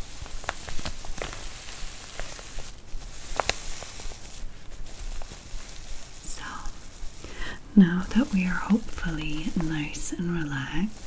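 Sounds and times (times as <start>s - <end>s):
nails scratching fabric: 0.0s - 11.0s.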